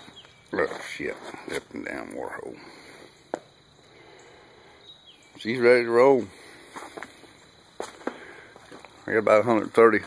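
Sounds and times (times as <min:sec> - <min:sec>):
quiet outdoor background: 0:00.0 - 0:10.0.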